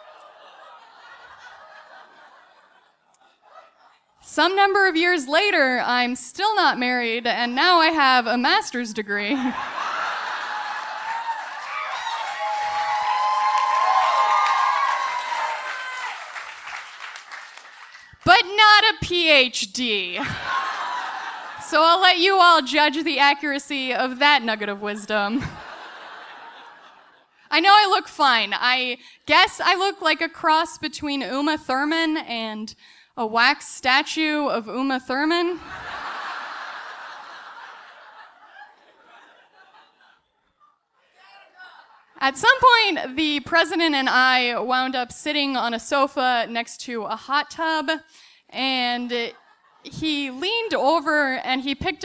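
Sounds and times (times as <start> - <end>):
audience laughing: 0.0 - 4.0, 9.3 - 12.4, 20.2 - 22.0, 24.6 - 27.4, 35.6 - 42.2
audience applauding: 10.5 - 18.2.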